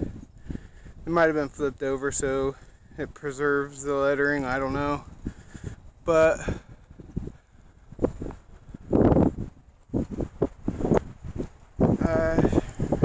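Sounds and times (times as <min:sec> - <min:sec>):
person's voice: 0:01.1 - 0:05.0, 0:12.0 - 0:12.7.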